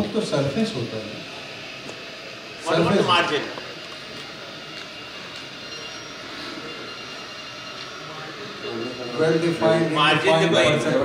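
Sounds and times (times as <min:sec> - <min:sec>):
room hiss and hum: 0:00.0 - 0:11.0.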